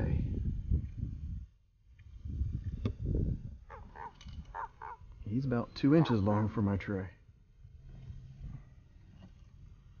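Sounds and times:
bird cawing: 0:03.7 - 0:05.1.

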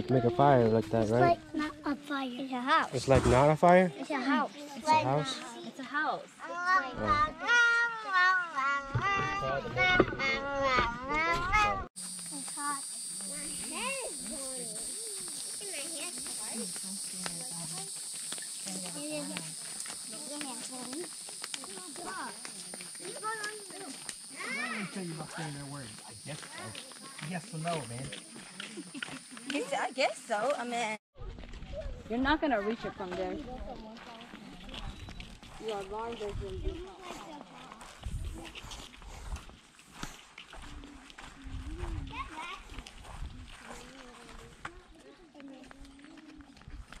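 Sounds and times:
footsteps on paved path: 0:00.0 - 0:02.8, 0:10.8 - 0:47.0
people talking and calling out: 0:00.0 - 0:47.0
distant children's voices: 0:06.4 - 0:16.7, 0:18.6 - 0:25.0.

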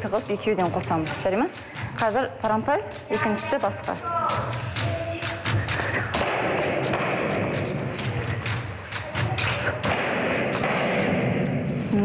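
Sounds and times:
kicks thudding on kicking paddle: 0:05.2 - 0:11.6.

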